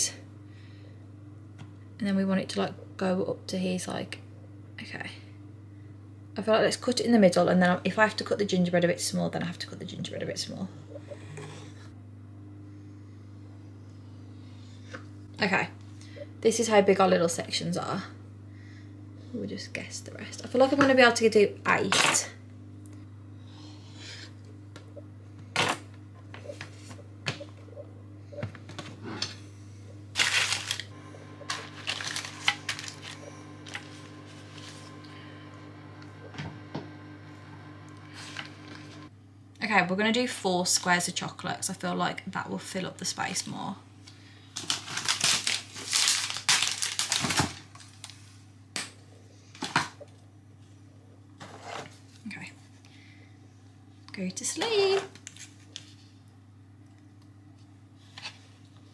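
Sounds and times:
steady low hum: 0.0 - 47.1
wrapper crinkling: 30.2 - 30.9, 31.5 - 33.8, 44.6 - 48.3.

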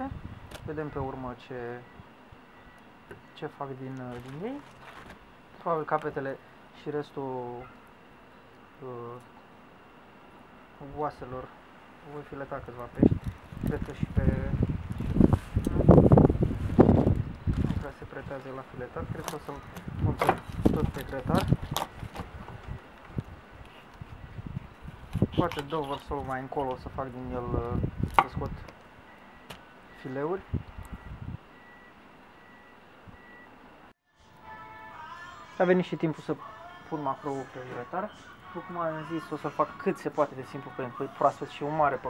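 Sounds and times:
wind buffeting microphone: 0.0 - 1.1, 13.0 - 17.9, 19.0 - 28.7, 30.4 - 31.5
paper rustling: 4.1 - 5.2.

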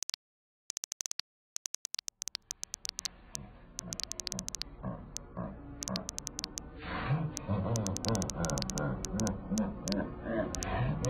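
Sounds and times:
rapid typing clicks: 0.0 - 3.1, 3.8 - 4.6, 5.2 - 6.6, 7.7 - 10.8
low animal-like sound: 3.1 - 11.0.

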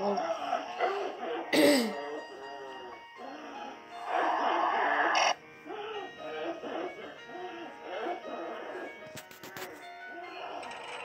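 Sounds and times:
eerie background music: 0.0 - 11.0.

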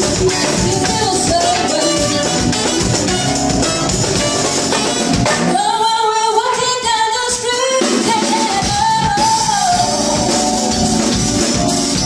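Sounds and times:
woman singing into a microphone: 0.0 - 3.0, 5.3 - 10.6
live band with drums: 0.0 - 12.0.

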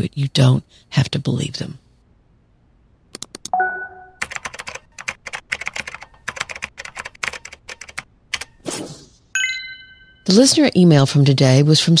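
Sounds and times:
bell-like chime: 3.6 - 4.2, 9.4 - 10.3
typing key clicks: 4.2 - 8.6.

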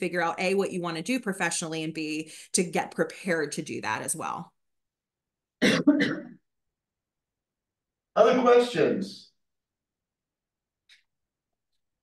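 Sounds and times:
person clearing throat: 5.6 - 6.4.

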